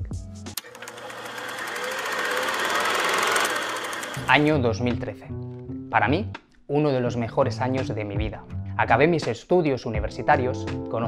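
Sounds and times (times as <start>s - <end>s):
fast mechanical clatter: 0.6s - 4.4s.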